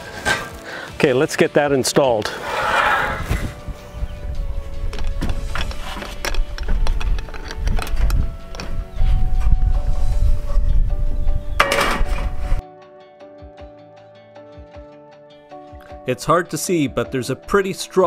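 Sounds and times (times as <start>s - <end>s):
wind buffeting microphone: 2.6s - 12.6s
guitar music: 3.2s - 18.0s.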